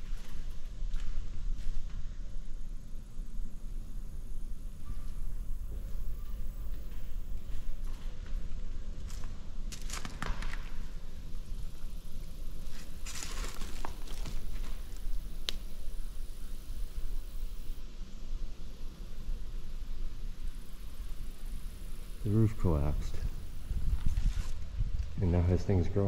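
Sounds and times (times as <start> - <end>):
footsteps crunching over debris: 0.0 - 2.3, 6.7 - 11.0, 12.6 - 15.2, 23.8 - 25.2.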